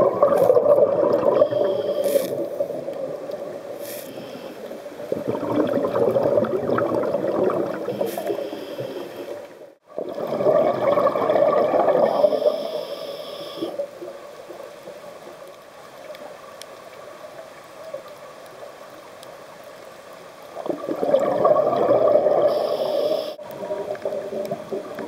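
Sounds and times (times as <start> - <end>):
air bubbles gurgling underwater: 0.0 - 3.7, 5.0 - 8.5, 9.4 - 12.6, 20.5 - 22.8, 23.4 - 25.0
steady underwater hiss: 0.0 - 25.0
regulator high hiss: 12.2 - 13.8, 22.5 - 23.4.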